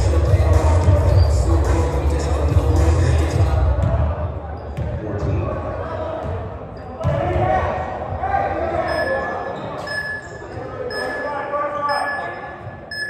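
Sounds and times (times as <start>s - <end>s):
players' voices: 0.0s - 13.0s.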